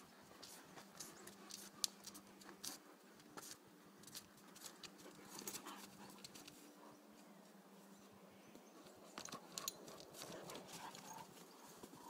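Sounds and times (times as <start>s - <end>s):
dogs scuffling: 9.1s - 12.0s.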